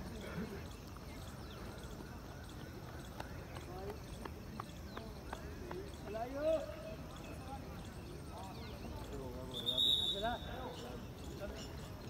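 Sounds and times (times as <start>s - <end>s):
faint distant voices: 0.0s - 12.0s
outdoor background noise: 0.0s - 12.0s
faint sharp jogging taps: 0.8s - 9.1s.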